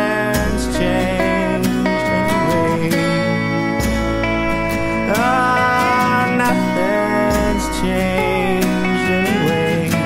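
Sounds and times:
bass guitar: 0.0 - 10.0
slide guitar line: 0.0 - 10.0
strummed acoustic guitar: 0.0 - 10.0.

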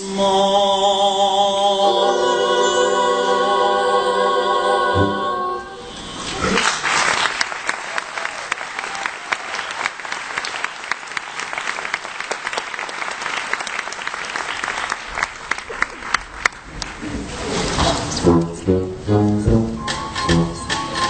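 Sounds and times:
audience applauding: 6.4 - 17.1.

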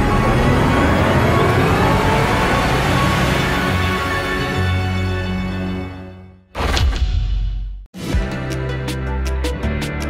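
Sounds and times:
rising siren-like tone: 0.0 - 4.5.

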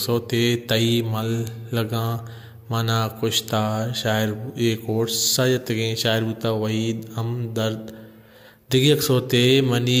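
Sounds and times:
man narrating in chant-like voice: 0.0 - 10.0.

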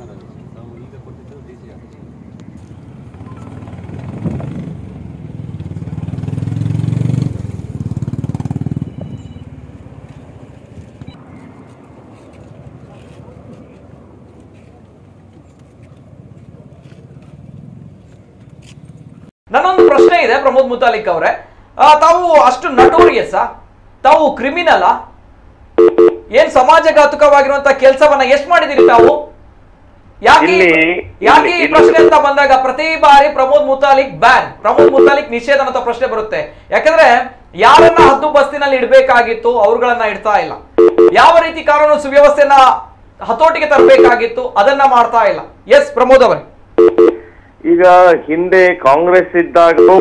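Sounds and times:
vehicle engine passing: 2.8 - 14.5
man talking: 19.5 - 25.0, 26.3 - 29.2, 30.2 - 46.4, 47.6 - 50.0.

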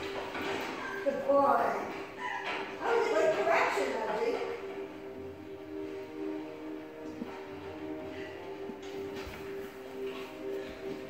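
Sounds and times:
dog whining and yipping: 0.6 - 1.2, 2.1 - 2.8.

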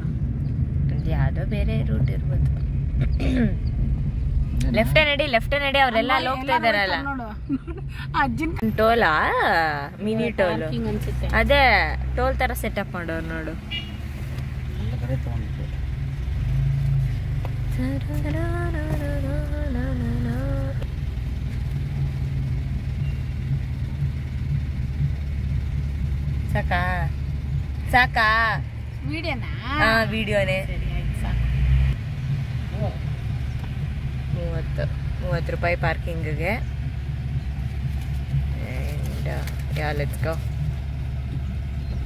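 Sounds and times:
car engine hum from inside: 0.0 - 42.0.

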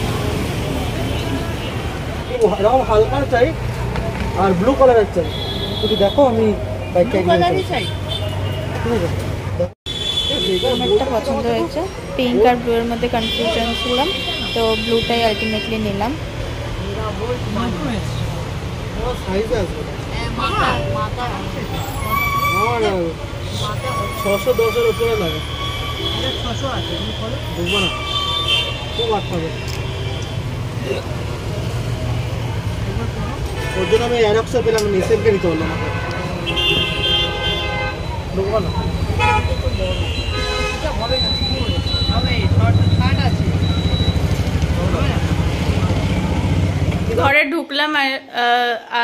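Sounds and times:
street traffic rumble: 0.0 - 49.0
vehicle horns honking: 5.1 - 9.0, 9.9 - 11.3, 12.9 - 16.1, 21.9 - 30.6, 33.5 - 44.3
vehicle horn: 33.5 - 34.4, 35.1 - 38.1, 39.2 - 42.5
people talking: 40.8 - 49.0.

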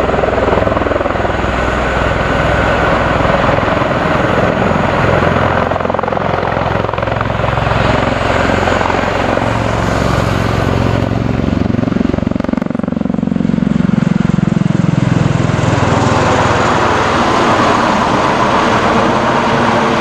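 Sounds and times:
aircraft rotor beat: 0.0 - 20.0
turbine noise: 0.0 - 20.0.

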